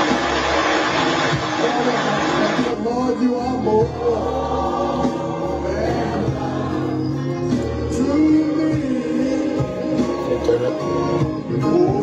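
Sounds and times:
gospel choir singing: 0.0 - 12.0
low musical accompaniment: 0.0 - 12.0.

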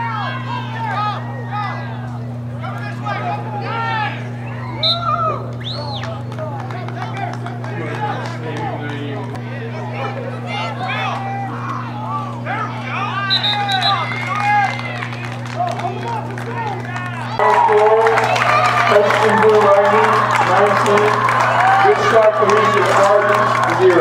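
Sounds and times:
crowd calling and shouting: 0.0 - 24.0
steady low hum: 0.0 - 24.0.

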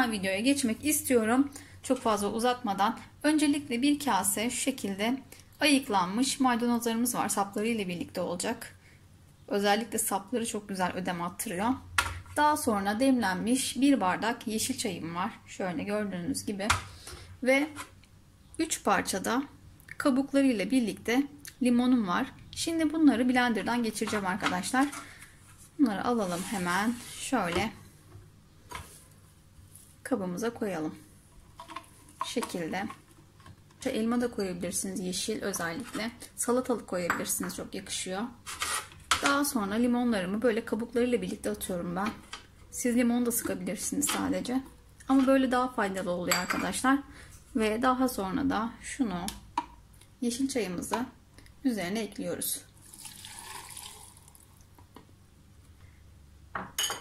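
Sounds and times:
tea pouring into cup: 52.8 - 54.6.

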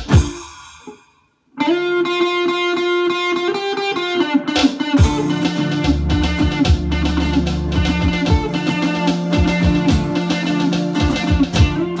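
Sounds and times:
drums and bass: 0.0 - 0.9, 4.6 - 12.0
full band hit: 0.0 - 1.1, 5.0 - 12.0
electric guitar repeated notes: 0.0 - 12.0.

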